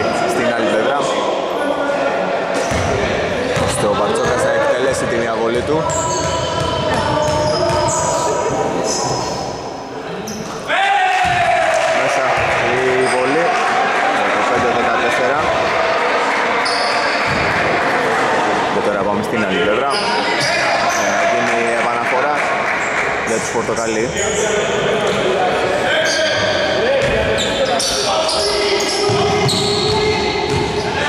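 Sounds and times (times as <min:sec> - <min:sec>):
shoe squeaks: 0:05.8 - 0:09.5, 0:16.6 - 0:17.3, 0:19.9 - 0:21.2, 0:25.9 - 0:31.0.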